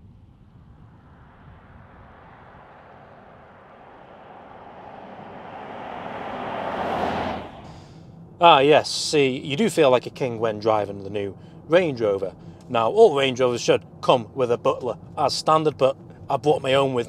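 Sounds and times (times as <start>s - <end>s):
car driving past: 0.4s - 8.6s.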